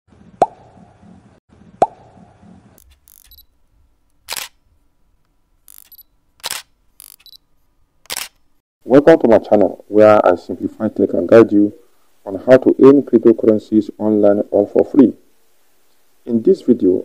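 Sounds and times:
small clicks: 2.8s - 3.5s, 4.2s - 4.6s, 5.7s - 7.4s, 8.0s - 8.6s.

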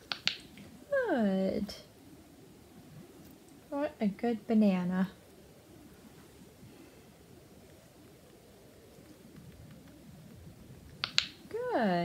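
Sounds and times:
woman speaking: 0.9s - 1.9s, 3.7s - 5.2s, 11.5s - 12.0s.

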